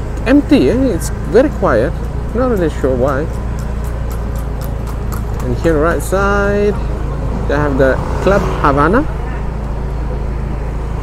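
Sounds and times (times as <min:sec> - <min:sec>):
car engine hum: 0:00.0 - 0:11.0
road noise inside car: 0:00.0 - 0:11.0.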